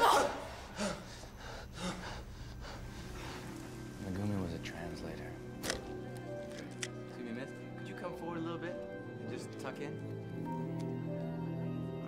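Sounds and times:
person breathing: 0.4s - 3.9s.

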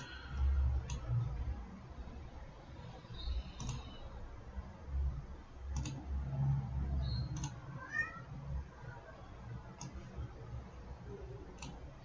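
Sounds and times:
computer mouse clicks: 0.0s - 1.2s, 3.2s - 4.1s, 5.7s - 6.1s, 7.1s - 7.6s, 9.8s - 10.1s, 11.5s - 11.9s
faint high chirps: 7.0s - 7.6s.

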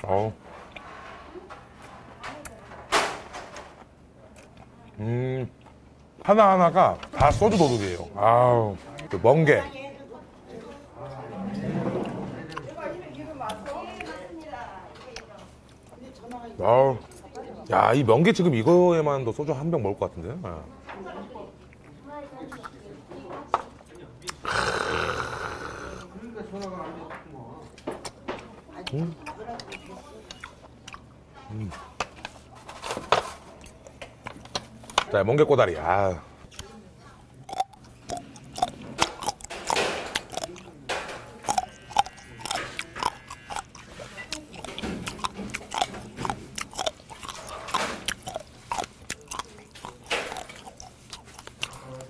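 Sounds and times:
man chewing food: 0.0s - 0.9s, 3.8s - 6.2s, 12.0s - 14.3s, 15.1s - 16.4s, 23.8s - 26.7s, 27.6s - 35.1s, 36.3s - 52.0s
lip smacks: 41.4s - 52.0s.

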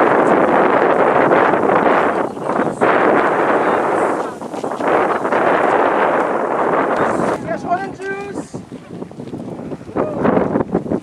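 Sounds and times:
people's voices: 0.0s - 10.5s
wind buffeting microphone: 0.0s - 11.0s.

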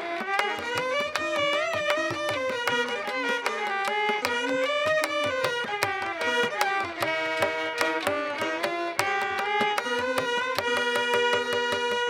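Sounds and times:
violins and veena melody: 0.0s - 12.0s.

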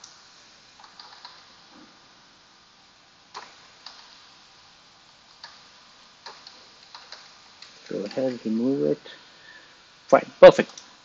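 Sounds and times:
low steady hiss: 0.0s - 11.0s
keyboard and mouse clicks: 0.8s - 1.4s, 3.4s - 4.1s, 6.2s - 8.4s.

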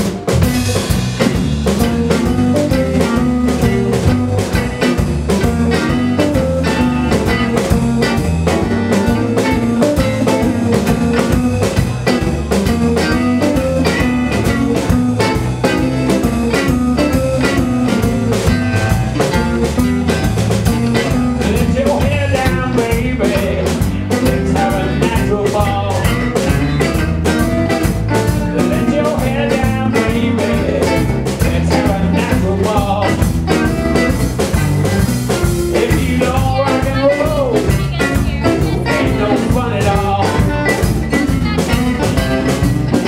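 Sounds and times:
blues band playing: 0.0s - 43.0s.

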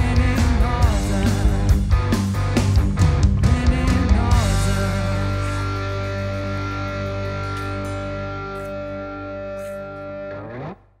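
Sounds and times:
distorted electric guitars and bass: 0.0s - 11.0s.

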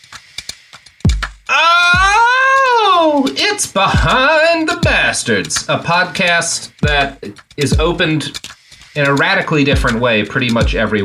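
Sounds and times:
man wailing: 1.5s - 5.1s
deep bass thumps: 4.8s - 5.1s, 6.8s - 7.2s, 7.8s - 8.0s, 9.8s - 10.0s, 10.6s - 10.9s.

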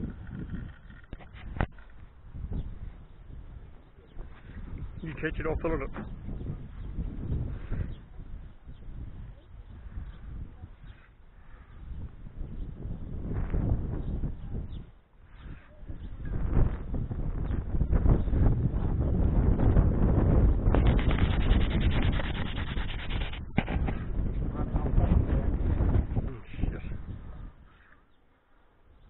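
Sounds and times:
microphone rumbling and rubbing: 0.0s - 27.9s
rapid fine ticking: 20.8s - 24.0s.

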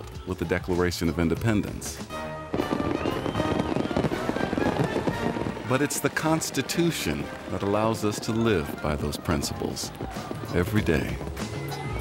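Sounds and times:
background music: 0.0s - 12.0s
fireworks crackling and popping: 2.5s - 11.6s
thin whistling tone: 2.9s - 3.8s.

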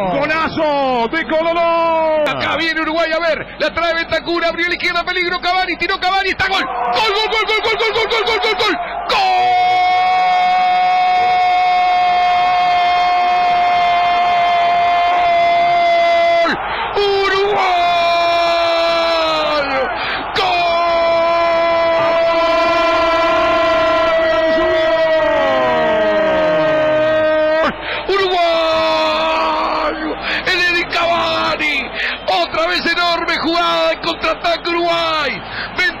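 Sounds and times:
commentator shouting: 0.0s - 36.0s
gasps for breath: 19.9s - 20.3s, 27.8s - 28.1s, 30.2s - 30.5s, 31.9s - 32.3s, 35.4s - 35.8s.

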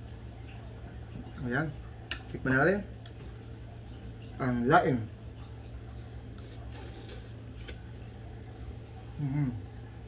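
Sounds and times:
chewing: 6.2s - 7.9s.

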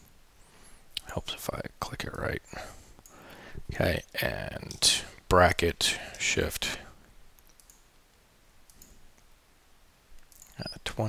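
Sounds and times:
computer mouse clicks: 7.4s - 7.9s, 8.7s - 9.3s, 10.2s - 10.6s.

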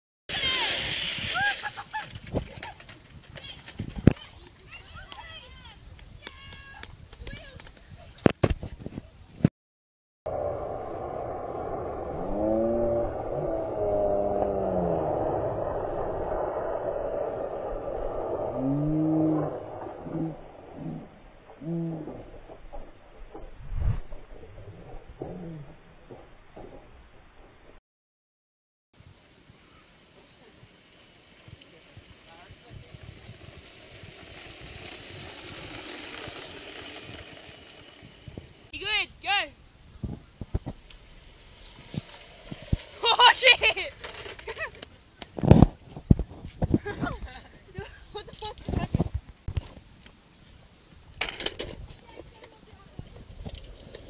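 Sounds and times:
plastic toy wheels rolling on asphalt: 0.3s - 5.6s, 30.6s - 38.7s, 40.4s - 47.2s, 47.8s - 49.8s, 51.2s - 54.0s.

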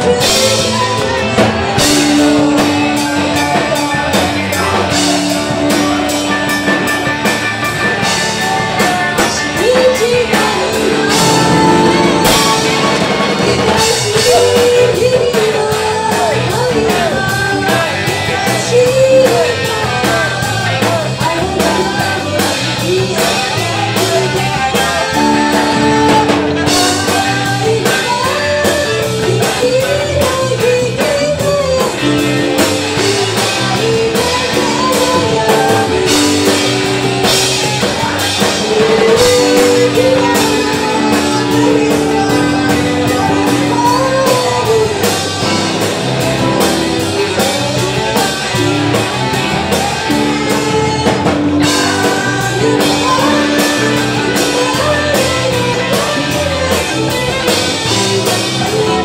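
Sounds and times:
drum kit steady beat: 0.0s - 59.0s
rock band playing live: 0.0s - 59.0s.

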